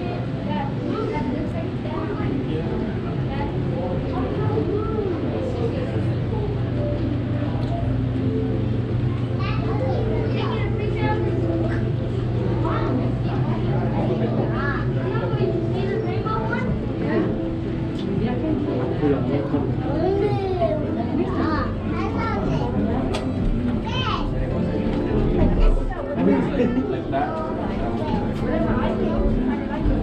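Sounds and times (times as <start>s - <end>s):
children's voices: 0.0s - 17.4s, 19.8s - 30.0s
chatter of many people: 0.0s - 30.0s
steady low hum: 0.0s - 30.0s.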